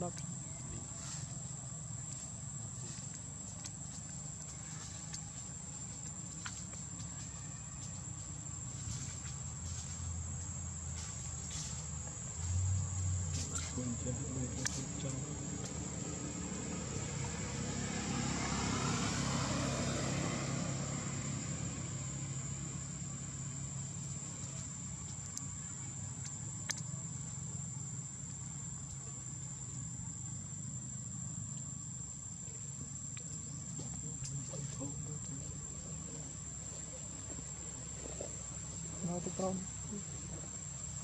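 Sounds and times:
insects trilling: 0.0s - 41.0s.

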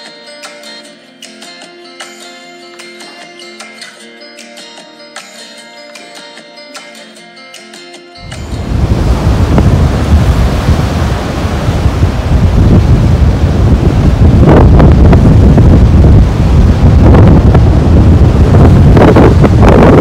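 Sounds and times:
surf breaking: 8.3s - 20.0s
wind buffeting microphone: 8.4s - 20.0s.

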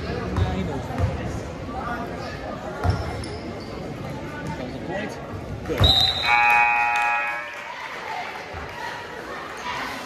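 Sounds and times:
referee's whistle: 5.8s - 7.4s.

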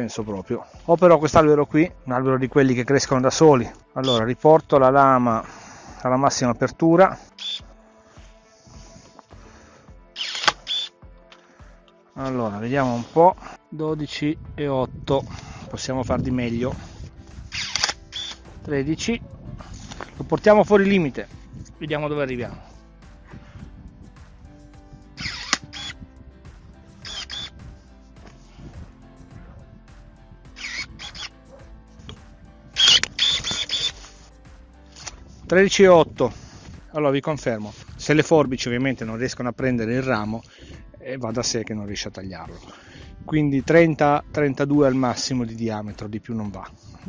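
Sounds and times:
background music: 0.0s - 47.0s
pruning shears motor whirring: 7.4s - 7.6s, 10.2s - 10.9s, 17.5s - 18.4s, 25.2s - 26.0s, 27.0s - 27.6s, 30.6s - 31.3s, 32.8s - 34.0s
high motor whine: 27.0s - 27.6s.

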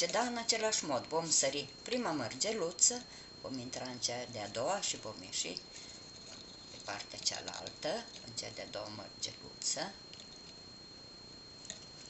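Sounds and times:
high-pitched whine: 0.0s - 12.0s.

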